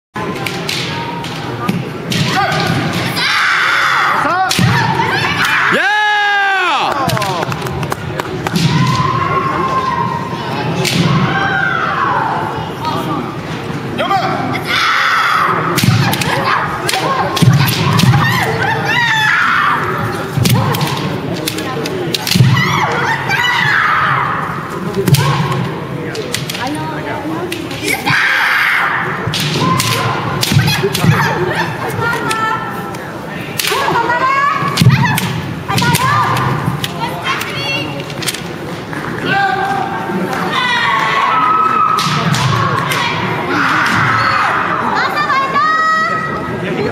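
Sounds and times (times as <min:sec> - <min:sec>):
bamboo swords clacking: 0:00.3 - 0:03.1, 0:15.8 - 0:18.2, 0:20.4 - 0:22.5, 0:25.0 - 0:26.7, 0:29.3 - 0:31.2, 0:33.6 - 0:34.0, 0:34.8 - 0:38.5
long drawn-out shout: 0:03.2 - 0:07.1.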